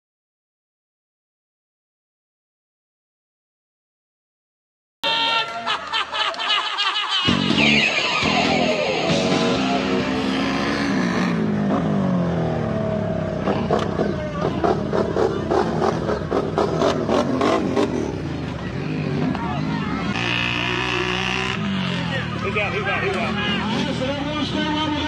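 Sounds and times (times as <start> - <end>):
atv engine revving: 7.3 - 25.0.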